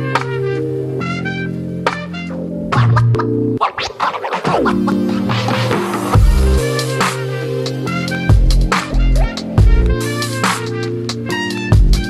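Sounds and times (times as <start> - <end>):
electronic music: 0.0 - 12.0
scratch-like strokes: 3.6 - 6.2.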